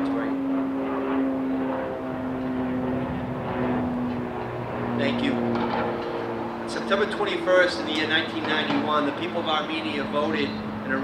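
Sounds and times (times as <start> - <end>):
low motor drone: 0.0 - 11.0.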